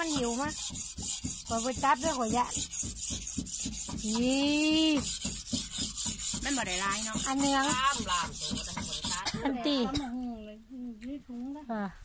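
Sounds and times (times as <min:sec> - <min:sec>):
people talking: 0:04.1 - 0:05.0, 0:06.5 - 0:12.0.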